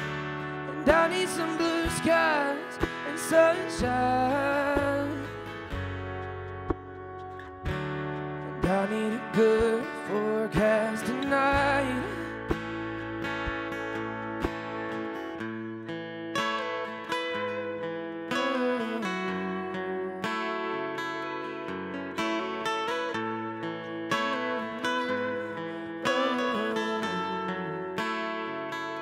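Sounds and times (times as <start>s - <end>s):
acoustic guitar playing: 0.0s - 29.0s.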